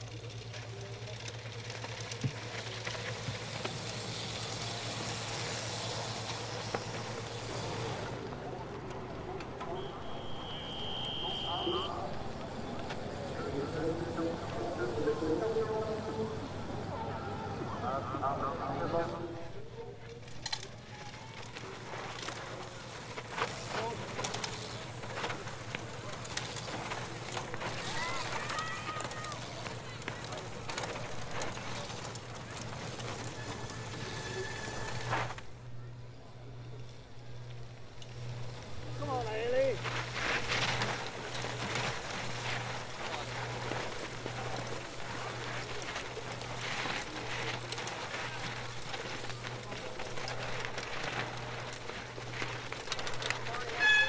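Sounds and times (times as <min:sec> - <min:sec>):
bike tyres skidding on dirt: 0:00.0 - 0:17.8, 0:20.1 - 0:35.8, 0:36.5 - 0:54.0
spectator voices and calls: 0:07.8 - 0:22.5.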